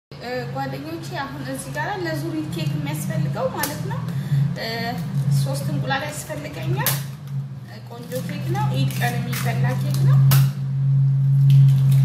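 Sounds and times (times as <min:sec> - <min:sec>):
low hum: 0:00.1 - 0:12.0.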